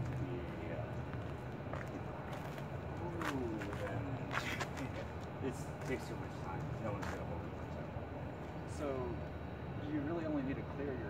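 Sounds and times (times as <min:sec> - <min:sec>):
distant traffic rumble: 0:00.0 - 0:11.0.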